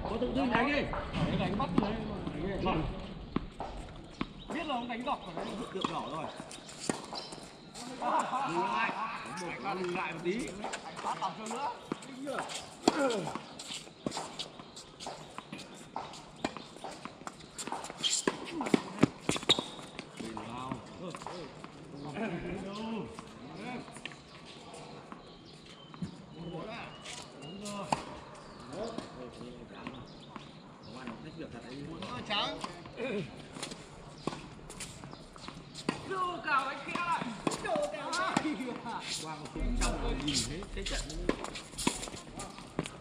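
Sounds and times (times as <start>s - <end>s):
players' voices: 0.0s - 14.2s, 18.2s - 25.2s, 26.0s - 42.9s.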